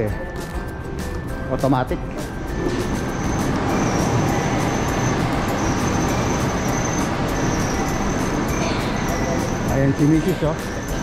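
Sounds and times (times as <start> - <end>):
loud steady rushing noise: 2.2 - 11.0.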